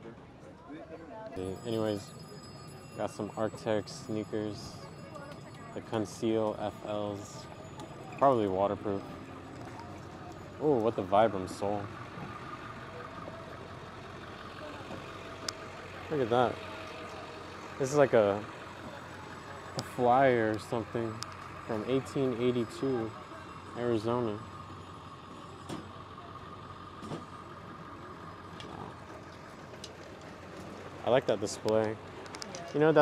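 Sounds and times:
vehicle engine idling hum: 0.0s - 33.0s.

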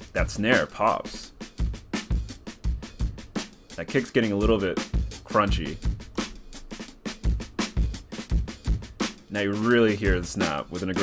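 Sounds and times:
distorted drum loop: 0.0s - 11.0s.

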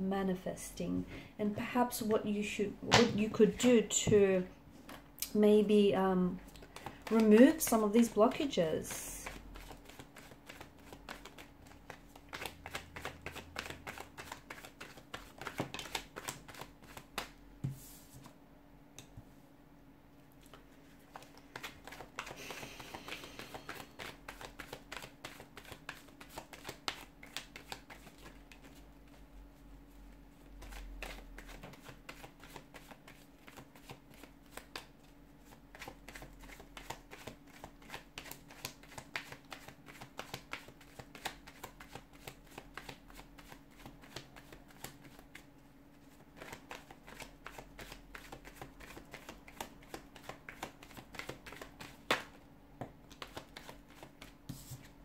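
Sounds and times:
cards being shuffled: 6.6s - 8.2s, 9.2s - 18.3s, 20.5s - 29.2s, 30.3s - 45.5s, 46.3s - 52.4s, 53.1s - 55.0s.

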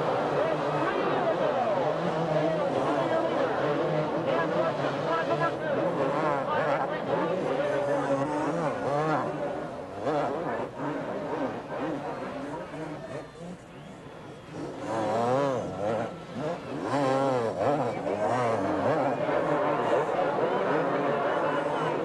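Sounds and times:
motorcycle engines revving: 0.0s - 22.0s.

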